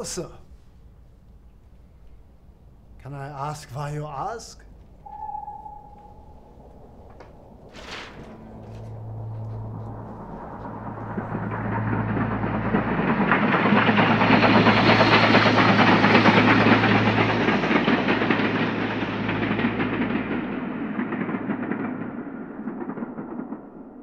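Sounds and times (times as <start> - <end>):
steady low hum: 4.6 - 24.0
train rattling rumble: 4.6 - 24.0.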